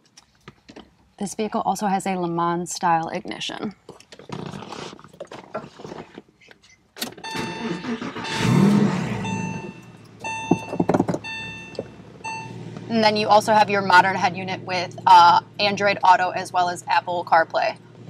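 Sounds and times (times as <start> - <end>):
car engine starting and idling: 7.0 - 18.0
repeating electronic chime: 7.2 - 12.6.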